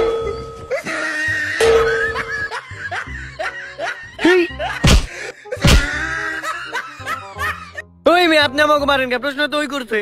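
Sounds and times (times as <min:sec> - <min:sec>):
music: 0:00.0 - 0:10.0
person laughing: 0:00.7 - 0:07.8.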